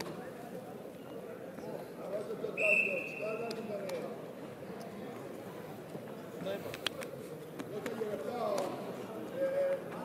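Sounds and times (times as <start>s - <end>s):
referee's whistle blast: 2.6s - 3.4s.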